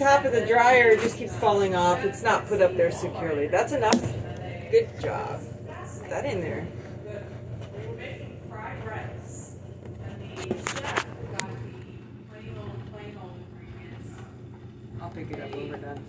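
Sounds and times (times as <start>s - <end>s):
low steady hum: 0.0s - 16.0s.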